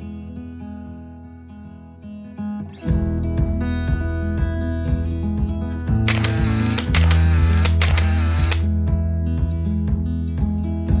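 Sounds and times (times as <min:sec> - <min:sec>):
acoustic guitar music: 0:00.0 - 0:07.9
camera shutter clicks: 0:06.1 - 0:08.7.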